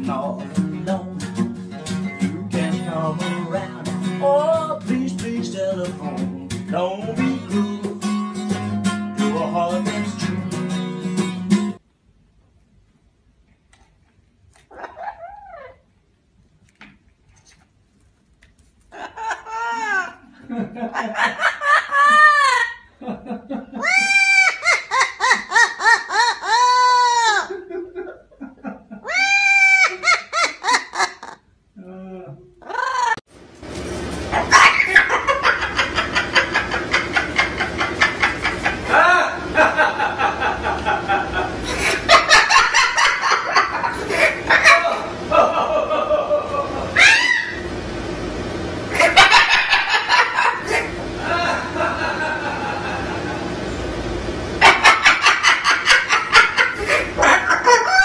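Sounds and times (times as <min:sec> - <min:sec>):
cockatoo clucking calls: 0:14.7 - 0:15.8, 0:34.4 - 0:39.5, 0:41.6 - 0:45.2, 0:49.0 - 0:50.9, 0:54.6 - 0:58.0
parrot mimicking laughter: 0:14.7 - 0:15.9, 0:18.9 - 0:23.0, 0:23.7 - 0:28.2, 0:28.9 - 0:31.5, 0:32.6 - 0:33.3, 0:34.4 - 0:47.7, 0:48.9 - 0:53.6, 0:54.6 - 0:58.0.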